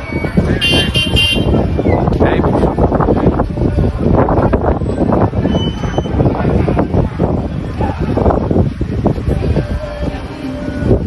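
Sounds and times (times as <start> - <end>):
crowd rumble: 0.0 - 11.0
traffic: 0.0 - 11.0
horn toot: 0.6 - 1.7.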